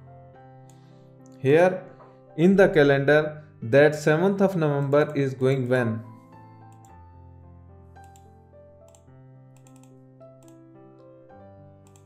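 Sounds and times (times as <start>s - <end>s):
soft background music: 0.0s - 12.0s
computer mouse clicks: 8.0s - 8.3s, 8.9s - 10.6s.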